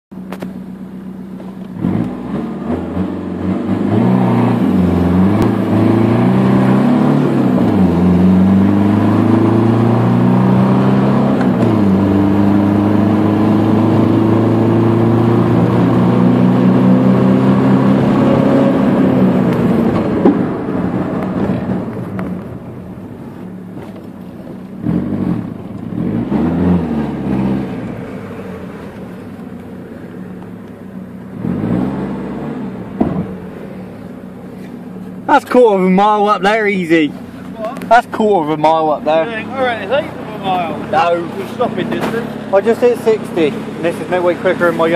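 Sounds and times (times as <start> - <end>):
car engine accelerating through gears: 1.4 - 44.9.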